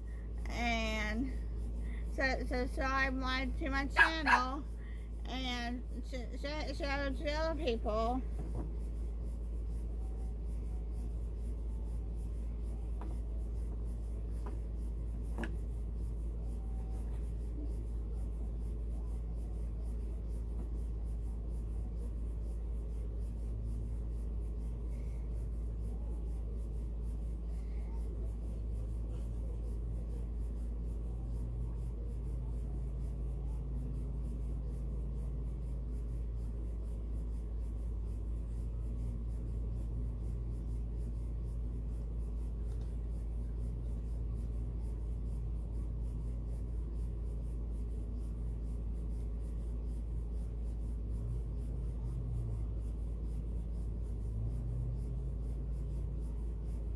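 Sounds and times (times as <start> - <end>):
steady low hum: 0.0 - 56.9
paintbrush scratching on wood: 2.2 - 56.9.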